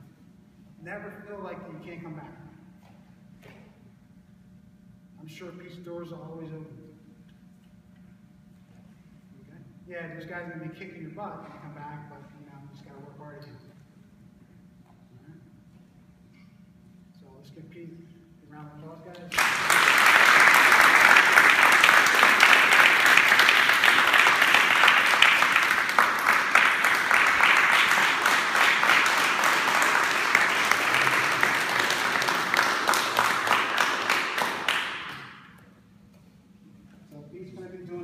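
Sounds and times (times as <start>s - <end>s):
group of people applauding: 19.3s - 35.6s.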